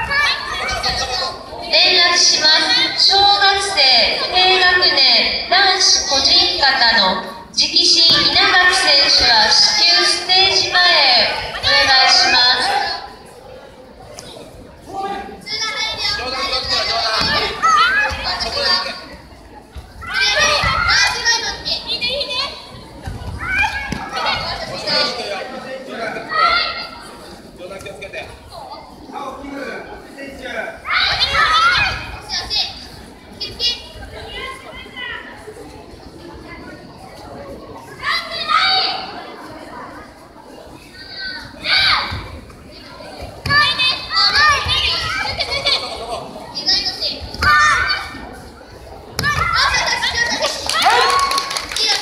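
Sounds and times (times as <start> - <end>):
children shouting: 0.0 - 3.3, 15.4 - 19.1, 20.0 - 25.4, 30.8 - 32.7, 37.8 - 39.8, 41.0 - 48.4, 49.2 - 52.0.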